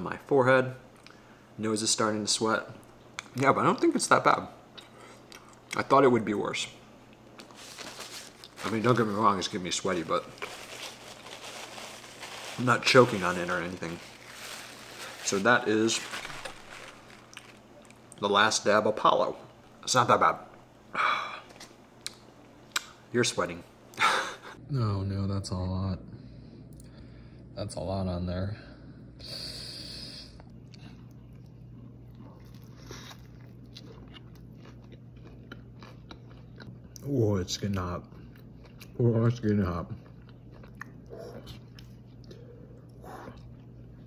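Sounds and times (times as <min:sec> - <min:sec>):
low hum of room tone: 0:00.0 - 0:44.0
man chewing food: 0:04.7 - 0:05.8, 0:07.0 - 0:08.6, 0:16.2 - 0:18.2, 0:30.4 - 0:39.0, 0:39.6 - 0:44.0.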